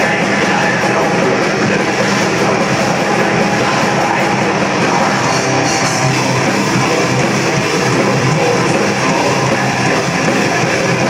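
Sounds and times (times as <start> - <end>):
bass guitar: 0.0 - 11.0
distorted electric guitars: 0.0 - 11.0
drums: 0.0 - 11.0.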